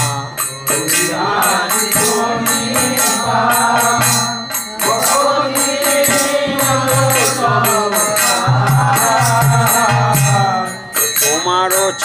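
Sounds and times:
man singing devotional song: 0:00.0 - 0:12.0
percussion strikes: 0:00.0 - 0:12.0.

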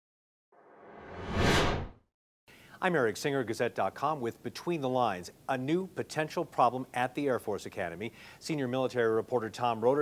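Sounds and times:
whoosh sound effect: 0:00.8 - 0:02.0.

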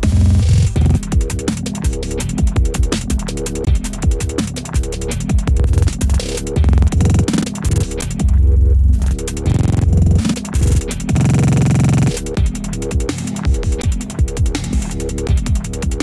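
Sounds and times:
electronic dance track: 0:05.4 - 0:08.2, 0:09.0 - 0:12.6
grain stutter effect: 0:06.6 - 0:08.0, 0:09.4 - 0:12.3.

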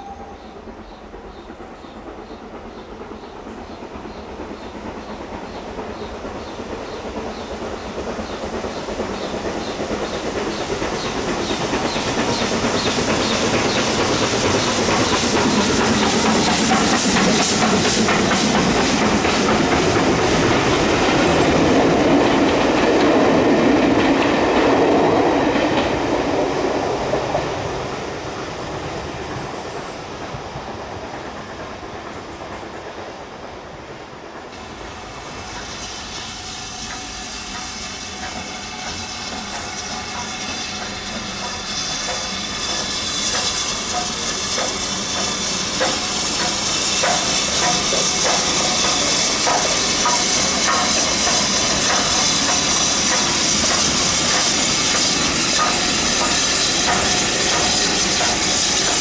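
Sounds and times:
train wheels clattering over rail joints: 0:00.8 - 0:28.0, 0:33.9 - 0:59.0.

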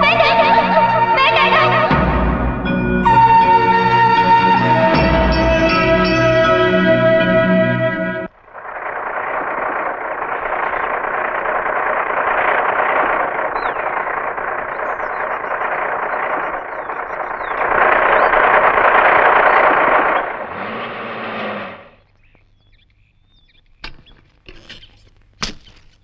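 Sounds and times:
tractor diesel engine running: 0:00.0 - 0:23.5.

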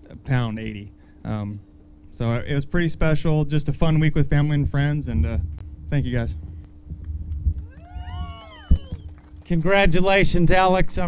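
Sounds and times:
wind rumbling on microphone: 0:04.5 - 0:09.4
microphone handling thump: 0:05.1 - 0:09.1
whistling tones: 0:07.6 - 0:09.2.

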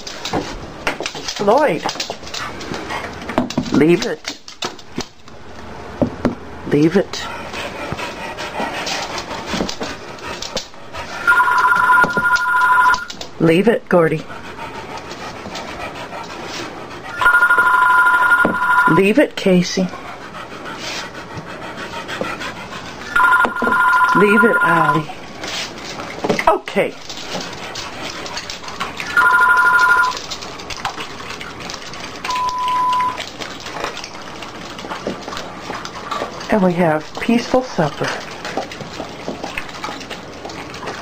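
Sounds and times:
dogs crunching dry kibble: 0:00.0 - 0:05.4, 0:22.2 - 0:41.0.

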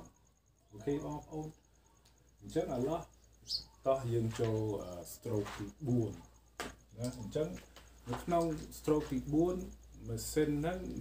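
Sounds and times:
man talking: 0:00.7 - 0:01.6, 0:02.4 - 0:03.1, 0:03.8 - 0:11.0.

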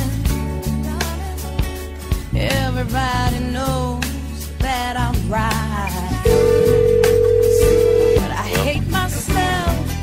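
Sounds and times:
instrumental song backing: 0:00.0 - 0:10.0
loud single-pitch beep: 0:06.3 - 0:08.4.

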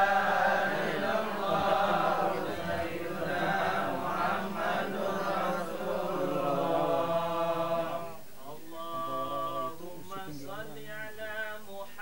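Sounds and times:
group chanting a prayer: 0:00.0 - 0:12.0.

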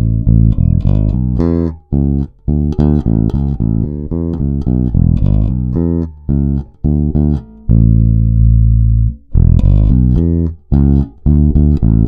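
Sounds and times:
electric bass played fingerstyle: 0:00.0 - 0:12.0.

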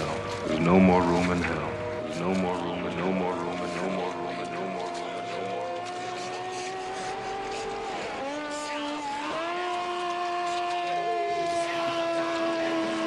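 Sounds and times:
synthesizer tones bending in pitch: 0:00.0 - 0:13.0.

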